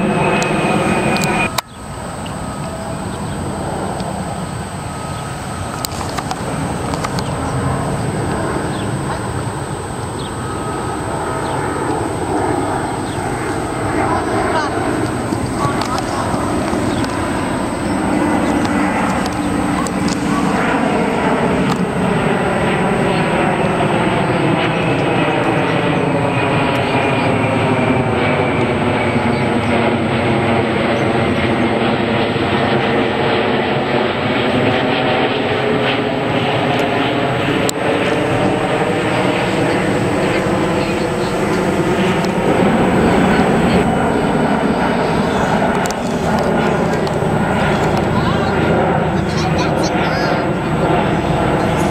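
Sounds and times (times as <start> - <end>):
jet airliner passing overhead: 0.0 - 51.9.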